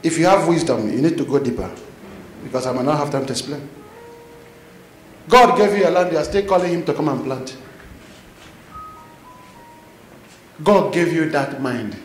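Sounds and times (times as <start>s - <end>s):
quiet room hiss: 0.0s - 12.0s.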